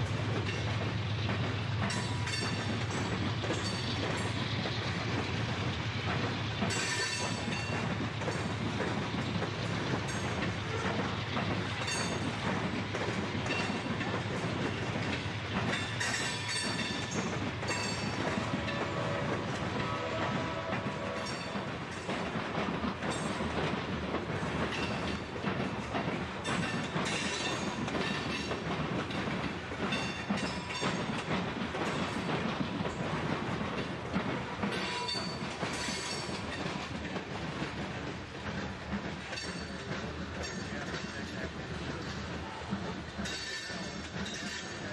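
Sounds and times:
freight train rumbling past: 0.0 - 44.9
wheels clacking over rail joints: 0.0 - 44.9.

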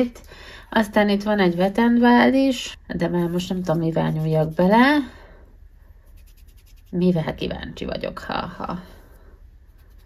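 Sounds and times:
fingertip scratching eyeshadow powder: 3.2 - 5.0, 6.0 - 7.3, 9.7 - 10.0.

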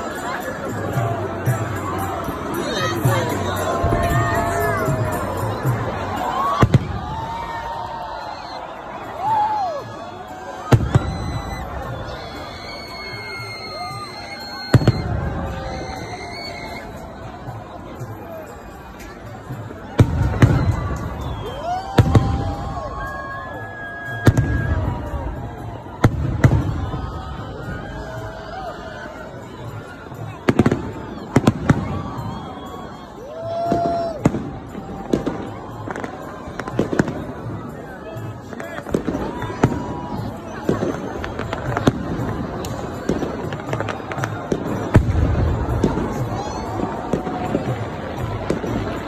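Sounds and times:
crowd noise: 0.0 - 49.0
fireworks bangs: 3.1 - 7.7, 10.6 - 13.4, 14.0 - 16.8, 19.7 - 22.8, 23.8 - 27.8, 30.2 - 32.4, 33.6 - 37.7, 38.4 - 49.0
firework whistle: 10.4 - 17.7, 19.8 - 28.3, 29.9 - 37.4.

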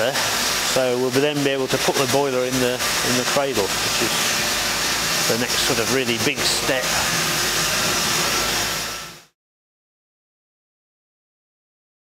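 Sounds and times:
hiss: 0.0 - 8.8
low machinery hum: 0.0 - 9.3.

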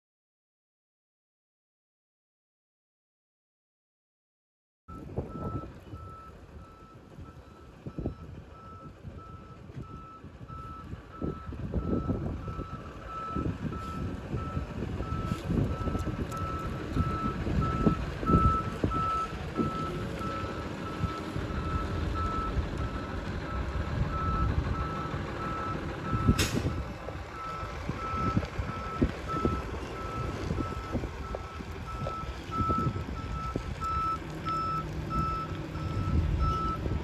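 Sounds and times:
truck reversing alarm beeping: 4.9 - 37.0
low rumble: 5.0 - 37.0.

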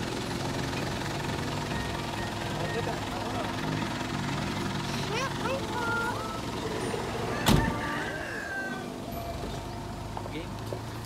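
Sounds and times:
van engine idling: 0.0 - 11.0
voices: 1.8 - 11.0.

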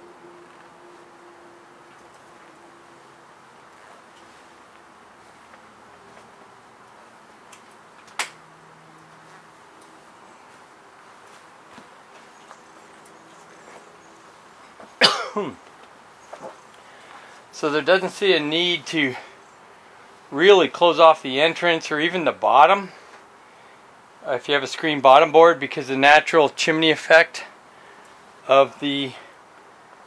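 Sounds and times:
man coughing: 15.0 - 15.6.

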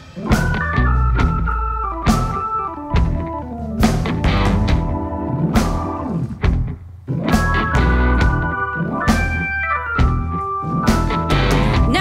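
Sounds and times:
blues rock band playing: 0.0 - 12.0
organ: 0.0 - 12.0.

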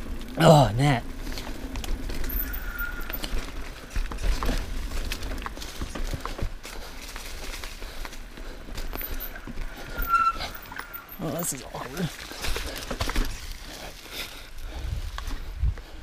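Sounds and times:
bike tyres crunching on dirt: 0.0 - 16.0
bike clattering over bumps: 1.0 - 11.1, 12.1 - 13.9
short high squeal: 2.4 - 3.2, 9.9 - 11.2
wind rumble on microphone: 14.6 - 16.0.

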